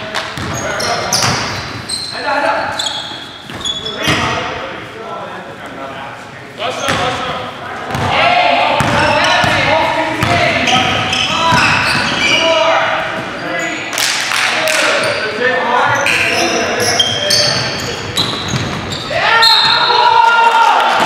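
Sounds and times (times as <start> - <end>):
sneakers squeaking: 0.0 - 4.6, 6.7 - 14.1, 14.7 - 20.3
players' voices: 0.0 - 21.0.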